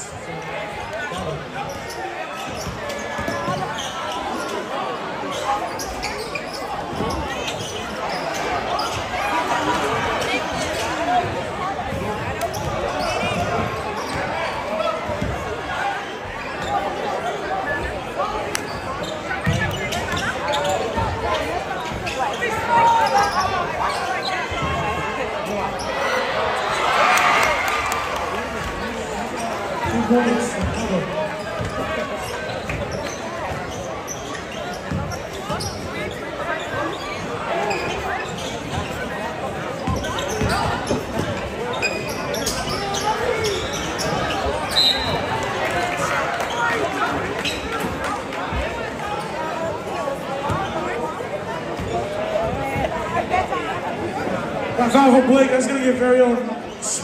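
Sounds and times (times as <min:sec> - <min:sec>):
crowd voices and shouts: 0:00.0 - 0:57.0.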